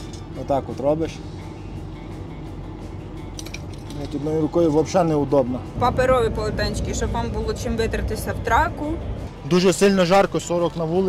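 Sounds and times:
diesel truck engine idling: 0.0 - 11.0.

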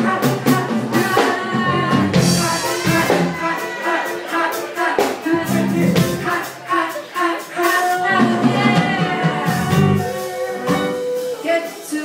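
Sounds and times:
live band playing: 0.0 - 12.0
person singing: 0.0 - 12.0.

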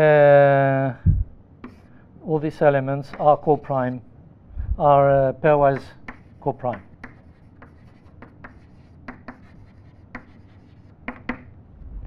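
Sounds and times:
chalk strokes on chalkboard: 1.6 - 1.9, 5.8 - 11.4.

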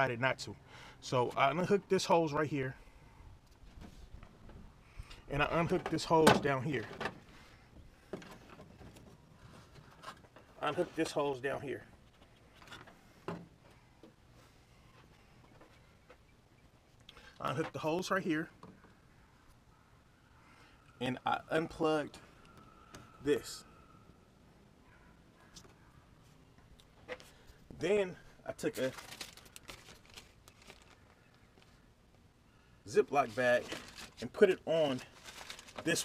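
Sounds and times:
plastic bag crinkling: 28.7 - 31.8, 33.3 - 36.0.

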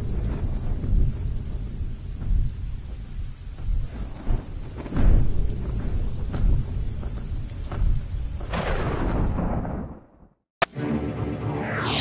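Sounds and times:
low rolling thunder-like rumble: 0.0 - 10.0.

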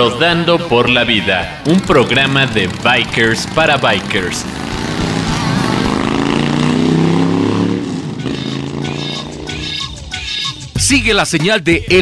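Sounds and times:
motorcycle engine revving: 1.3 - 10.8
music with a beat: 8.3 - 12.0.

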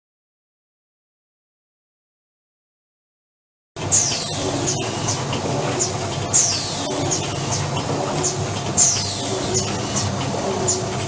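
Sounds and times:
machine clattering: 3.8 - 11.0.

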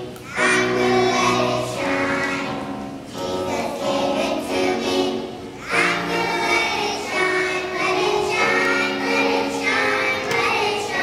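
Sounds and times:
children's choir singing: 0.0 - 11.0
piano accompaniment: 0.0 - 11.0.

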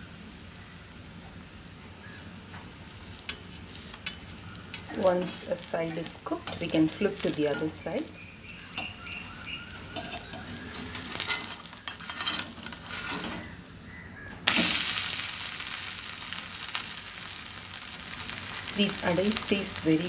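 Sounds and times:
food sizzling in oil: 0.0 - 20.0
steel spatula scraping: 2.9 - 13.6.

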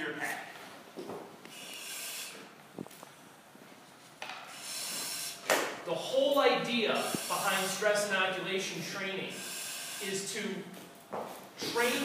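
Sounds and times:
hissing breath through regulator: 1.5 - 2.4, 4.5 - 5.4, 9.3 - 10.2.

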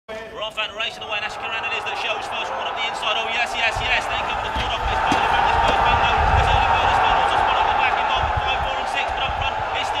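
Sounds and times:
spectators shouting excitedly: 0.8 - 10.0.

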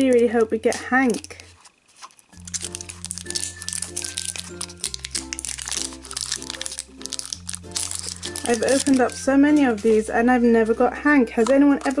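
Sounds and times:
plastic wrapper crinkling: 0.7 - 10.1.

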